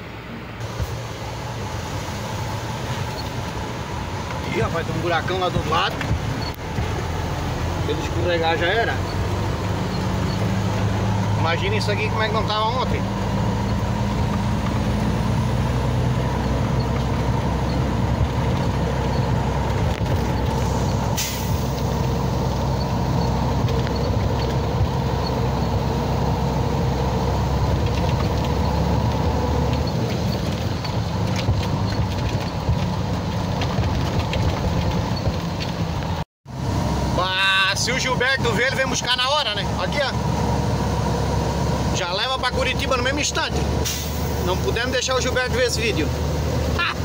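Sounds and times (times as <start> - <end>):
diesel truck engine running: 0.0 - 47.0
short hiss: 20.6 - 21.9.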